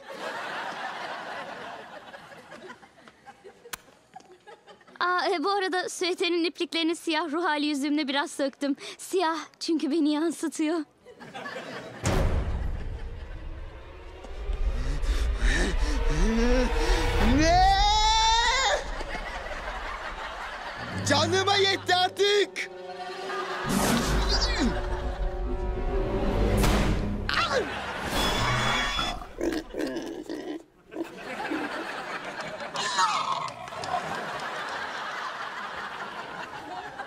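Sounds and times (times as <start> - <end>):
pig grunting: 28.7 - 31.2
man making mouth noises: 29.0 - 31.2.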